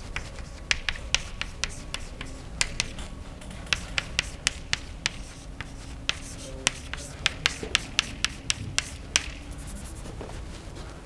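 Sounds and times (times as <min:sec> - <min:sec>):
chalk tapping on blackboard: 0:00.0 - 0:10.0.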